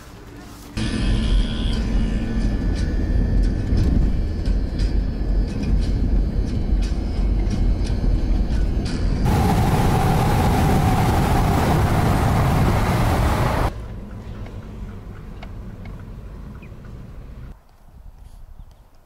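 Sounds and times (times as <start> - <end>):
road rumble inside car: 0.9 - 17.6
rushing wind and tyre noise: 7.8 - 13.8.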